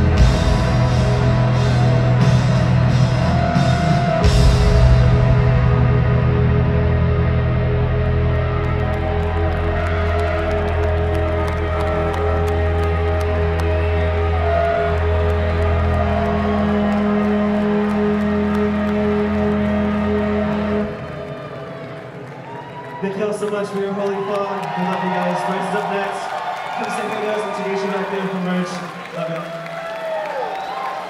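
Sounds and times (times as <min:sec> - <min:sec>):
rock band droning outro: 0:00.0 - 0:22.0.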